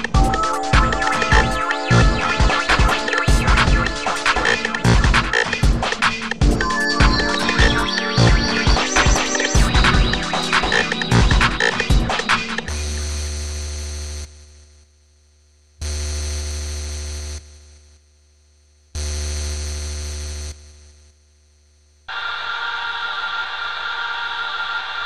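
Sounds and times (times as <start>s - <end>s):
sustained synth chord: 0.2s - 5.2s, 6.5s - 13.0s.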